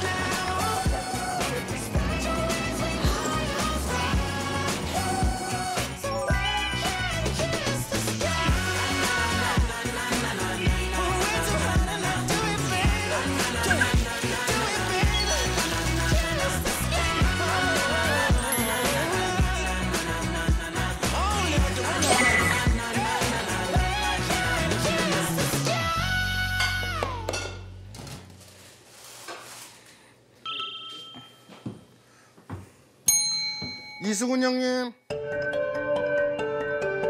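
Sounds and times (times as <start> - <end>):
pop music with steady beat: 0.0 - 27.4
two-tone bell ding: 30.4 - 31.6, 33.1 - 34.4.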